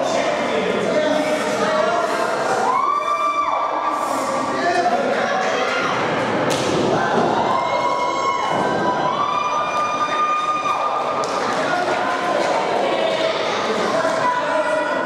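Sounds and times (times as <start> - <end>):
spectators shouting: 6.8 - 14.7.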